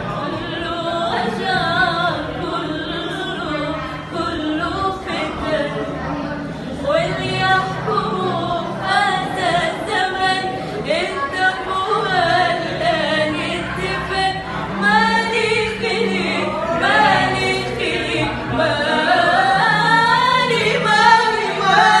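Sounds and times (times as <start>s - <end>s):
two women singing a cappella: 0.0s - 22.0s.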